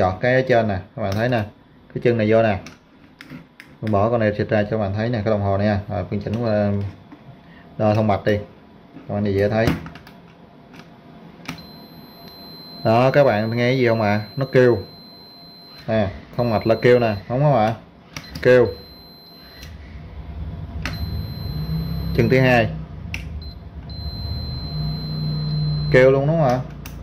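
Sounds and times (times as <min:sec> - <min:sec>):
low hum: 0:10.4 - 0:27.0
high continuity beep: 0:11.6 - 0:20.0, 0:20.8 - 0:22.7, 0:23.4 - 0:26.4
probe click: 0:20.8 - 0:22.4.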